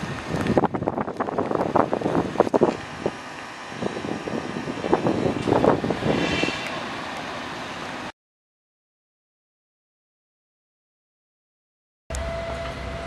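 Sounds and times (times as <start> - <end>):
wind rumbling on microphone: 0.0 - 8.1
high-pitched squeal: 2.8 - 8.1.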